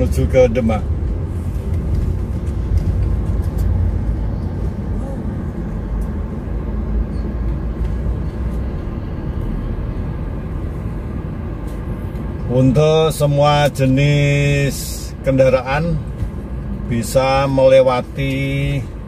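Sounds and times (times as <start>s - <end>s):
car engine rumble: 0.0s - 19.0s
road noise inside car: 0.0s - 19.0s.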